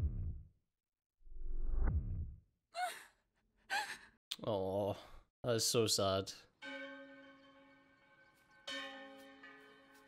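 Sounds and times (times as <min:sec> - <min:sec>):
bell-like note ringing: 0:06.6 - 0:10.0.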